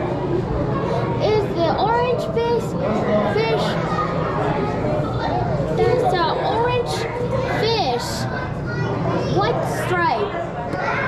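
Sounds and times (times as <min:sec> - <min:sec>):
background chatter: 0:00.0 - 0:11.0
children's voices: 0:00.0 - 0:11.0
din of busy hall: 0:00.0 - 0:11.0.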